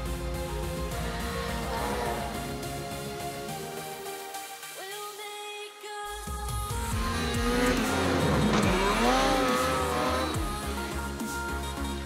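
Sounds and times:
electronic music with steady beat: 0.0 - 12.0
snowmobile engine revving: 0.6 - 2.9, 6.9 - 11.2.

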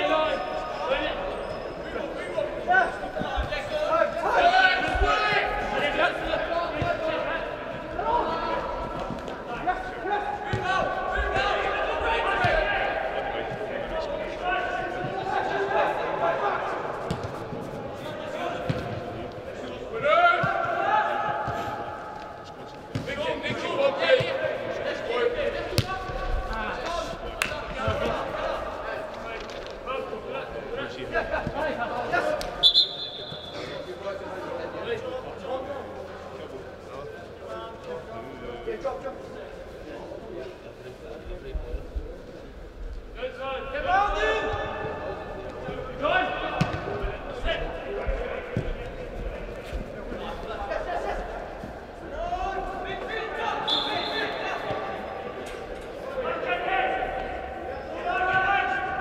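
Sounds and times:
players shouting: 2.0 - 34.5, 50.4 - 59.0
high whistle blast: 32.6 - 33.6
ball being kicked: 46.6 - 46.8.

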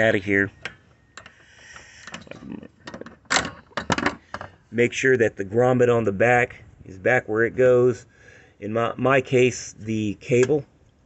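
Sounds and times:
metal latch clicking and rattling: 0.0 - 4.6.

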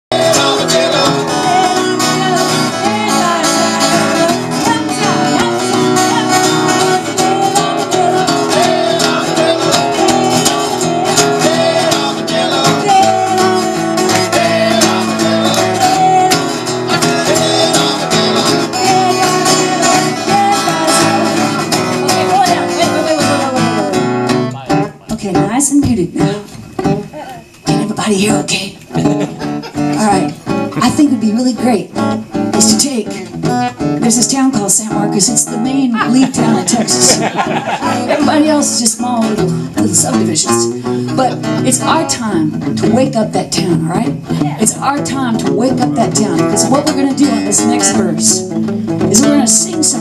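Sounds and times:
guitars strummed: 0.1 - 50.0
voices singing: 0.1 - 50.0.

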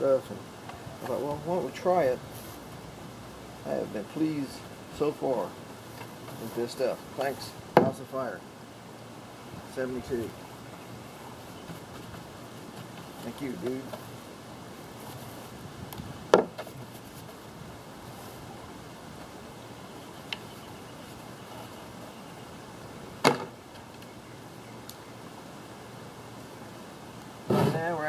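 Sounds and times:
steady low hiss: 0.0 - 28.0
sharp knocks on plywood lid: 16.3 - 16.7.

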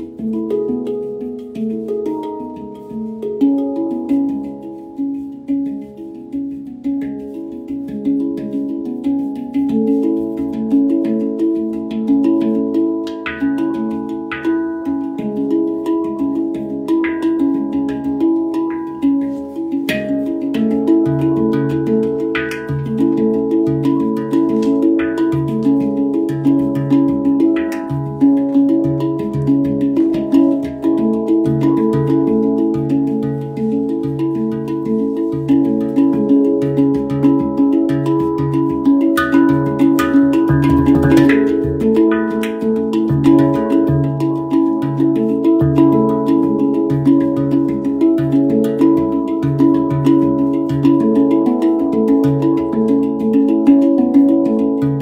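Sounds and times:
handpan notes ringing: 0.0 - 55.0.

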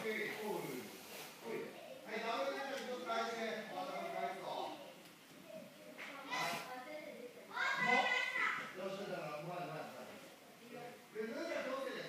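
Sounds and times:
children's voices: 3.8 - 8.8.

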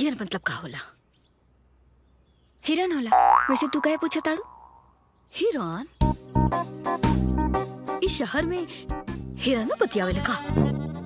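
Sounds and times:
cartoon boing sound effect: 3.1 - 4.9.

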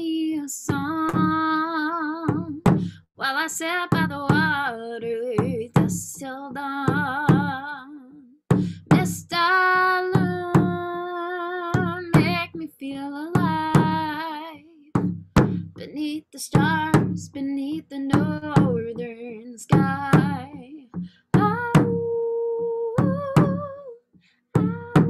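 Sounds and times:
hand drum beats: 0.7 - 3.0, 3.7 - 7.7, 8.5 - 11.0, 11.6 - 12.6, 13.2 - 14.3, 14.9 - 23.9, 24.6 - 25.0.

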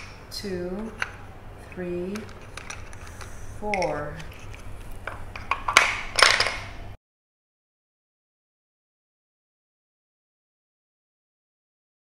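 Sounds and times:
wooden spindles clattering: 0.8 - 6.7.

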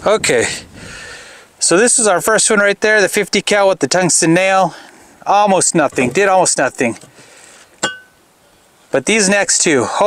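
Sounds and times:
low outdoor background: 0.0 - 10.0
sharp metallic clink: 7.8 - 8.2.

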